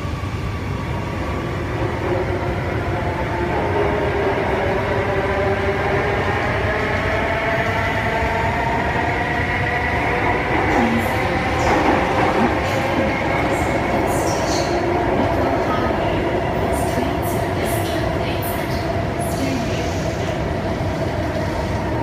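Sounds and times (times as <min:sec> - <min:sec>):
metro car rumbling on track: 0:00.0 - 0:22.0.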